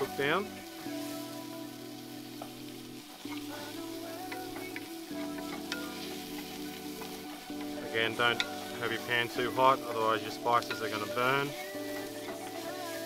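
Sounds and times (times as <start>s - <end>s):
background music of sustained chords: 0.0s - 13.0s
onion and garlic sizzling in pot: 0.0s - 13.0s.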